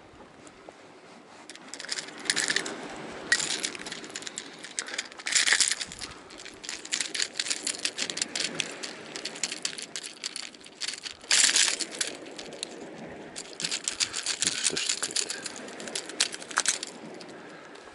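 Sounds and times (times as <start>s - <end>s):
metal tools and hooks rattling: 1.5s - 17.4s.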